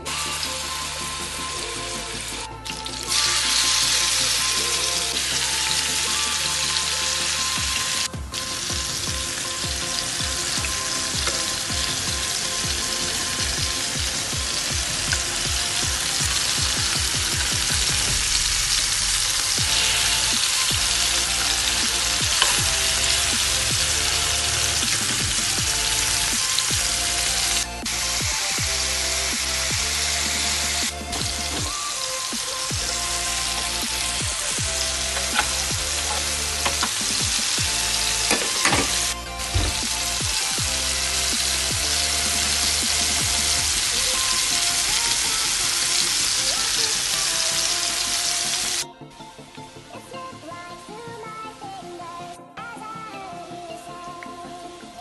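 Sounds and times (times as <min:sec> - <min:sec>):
chicken sizzling in a pan: 0:03.1 - 0:48.8.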